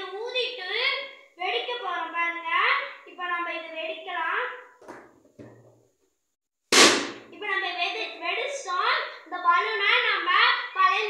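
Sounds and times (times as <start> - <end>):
balloon bursting with a bang: 6.7 - 7.4.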